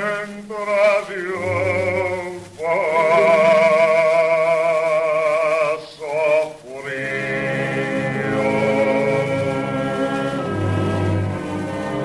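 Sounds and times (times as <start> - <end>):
man singing with vibrato: 0.0 - 11.4
low accompaniment: 0.1 - 12.0.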